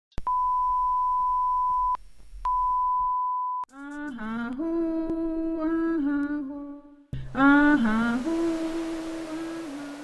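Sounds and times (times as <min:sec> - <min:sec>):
person humming: 0:03.7 - 0:10.0.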